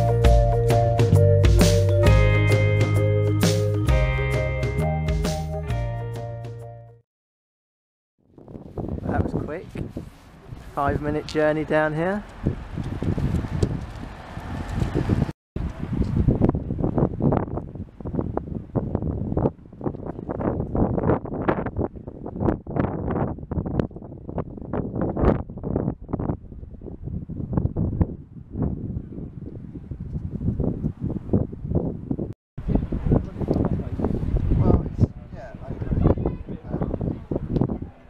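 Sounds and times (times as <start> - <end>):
wind buffeting microphone: 8.3 - 38.0.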